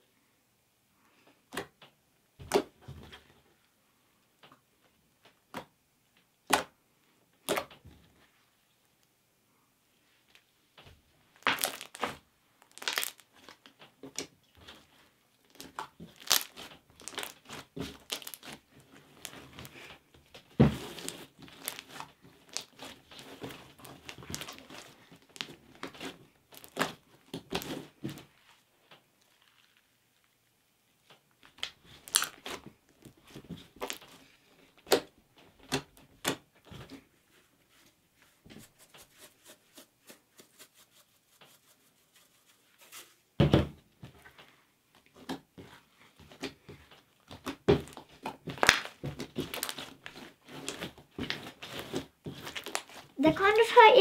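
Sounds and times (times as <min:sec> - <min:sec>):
slime squished by hand: 0:11.4 - 0:13.6, 0:15.5 - 0:19.8, 0:20.6 - 0:28.2, 0:31.4 - 0:32.7, 0:47.2 - 0:53.1.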